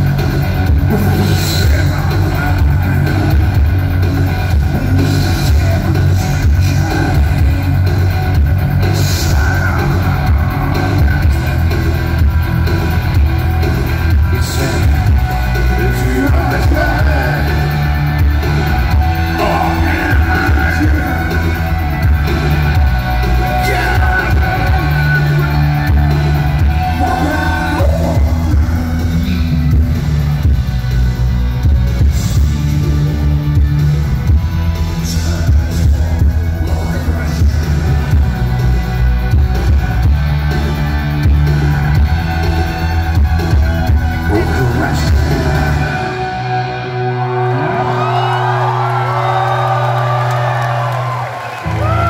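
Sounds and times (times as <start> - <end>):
steady drum beat: 0.0 - 45.9
heavy bass: 0.0 - 52.0
live rock band music: 0.0 - 52.0
crowd whooping and cheering: 8.8 - 29.6, 37.9 - 52.0.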